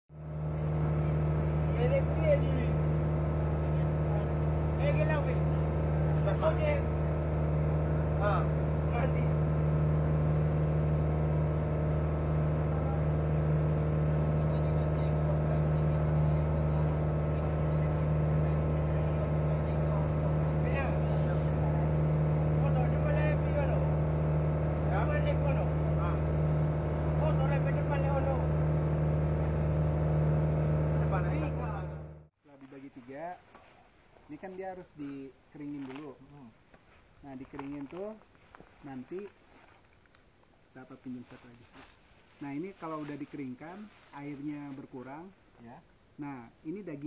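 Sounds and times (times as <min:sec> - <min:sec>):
boat engine droning: 0:00.1 - 0:32.3
faint voices: 0:00.3 - 0:29.8.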